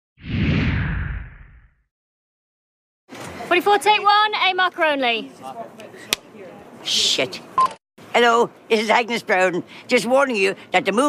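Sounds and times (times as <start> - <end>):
whoosh over deep rumble: 0.2 - 1.8.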